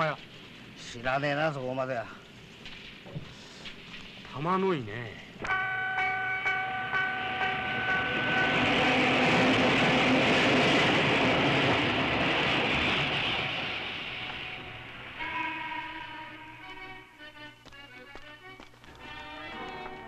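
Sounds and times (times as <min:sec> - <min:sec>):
train passing rumble: 0:05.3 - 0:17.2
held steady tone: 0:05.4 - 0:10.0.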